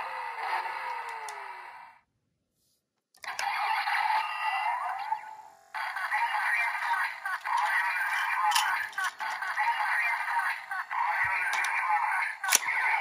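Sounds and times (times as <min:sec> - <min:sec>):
toy belt electronic sound effects: 0:03.2 - 0:13.0.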